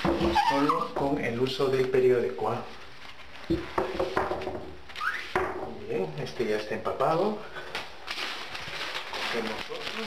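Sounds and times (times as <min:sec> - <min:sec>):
newspaper rubbing on glass: 0:00.0 - 0:00.9.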